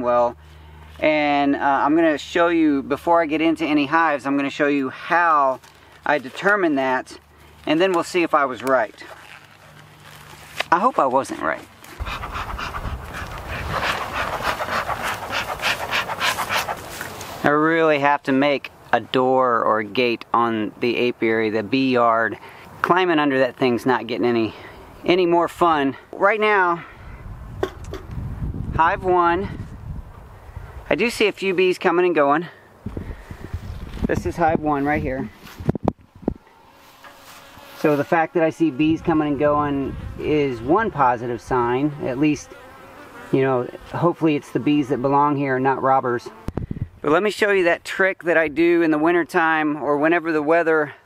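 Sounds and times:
faint outdoor hiss: 0:00.0 - 0:51.0
man speaking: 0:01.0 - 0:09.1, 0:10.6 - 0:11.7, 0:17.4 - 0:26.8, 0:30.9 - 0:32.6, 0:34.1 - 0:35.4, 0:37.8 - 0:42.5, 0:43.4 - 0:46.3
animal panting rapidly: 0:11.8 - 0:17.2.

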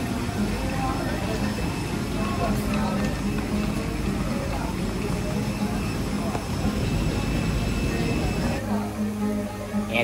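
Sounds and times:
high whine: 0:00.0 - 0:10.0.

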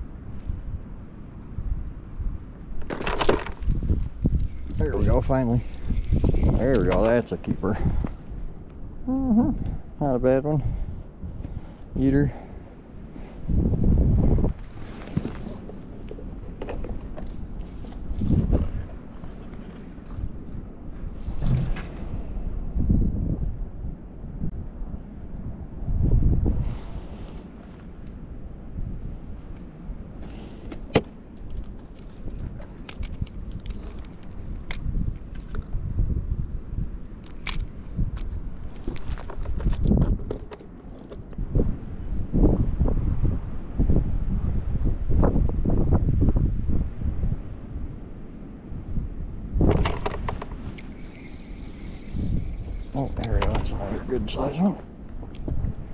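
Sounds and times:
wind buffeting microphone: 0:00.0 - 0:55.9
fishing gear clicks and knocks: 0:02.8 - 0:07.2, 0:14.5 - 0:18.7, 0:30.6 - 0:35.7, 0:37.2 - 0:41.4, 0:49.6 - 0:53.9.

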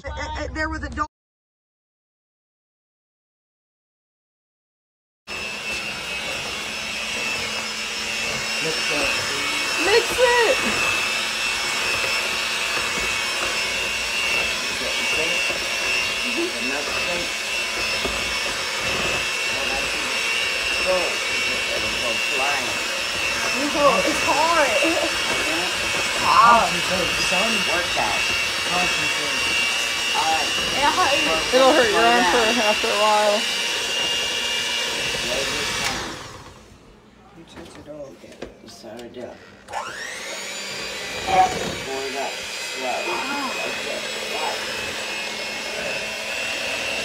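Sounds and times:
electric hand mixer whirring: 0:05.3 - 0:37.2, 0:39.1 - 0:47.0.

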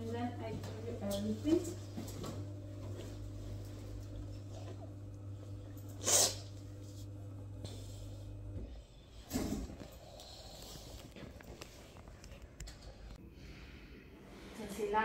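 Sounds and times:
low electrical hum: 0:00.0 - 0:15.0
breath through nose: 0:09.8 - 0:11.2.

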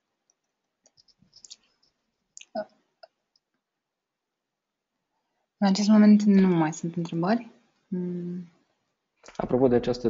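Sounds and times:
faint clicks: 0:00.2 - 0:03.6.

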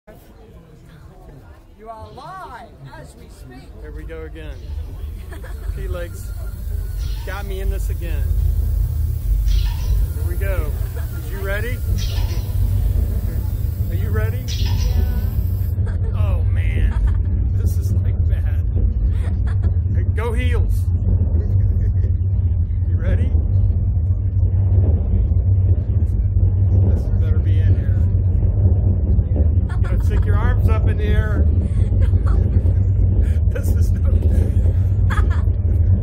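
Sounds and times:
loud low rumble: 0:03.7 - 0:36.0
people screaming and laughing: 0:04.6 - 0:09.3, 0:09.9 - 0:17.4, 0:19.1 - 0:20.0, 0:29.7 - 0:30.7, 0:31.3 - 0:36.0.

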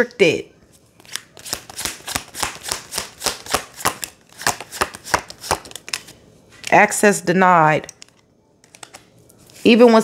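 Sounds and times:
cards shuffled by hand: 0:01.0 - 0:06.1.

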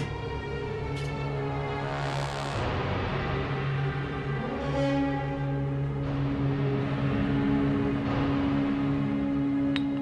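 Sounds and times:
eerie droning background music: 0:00.0 - 0:10.0.

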